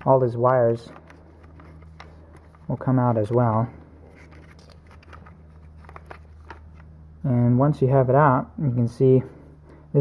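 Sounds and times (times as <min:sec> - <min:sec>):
steady low hum: 0:00.0 - 0:10.0
plastic clicks and rustles: 0:00.1 - 0:06.9.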